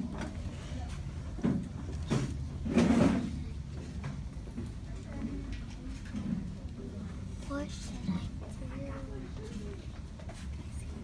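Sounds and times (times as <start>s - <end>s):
pupils talking indistinctly: 3.0s - 11.0s.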